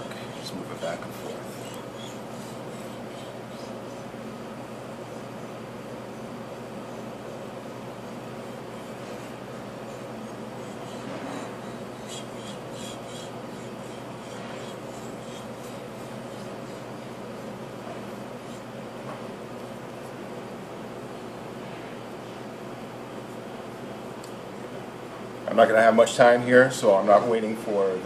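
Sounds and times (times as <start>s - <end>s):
steady background hum: 0.0s - 28.0s.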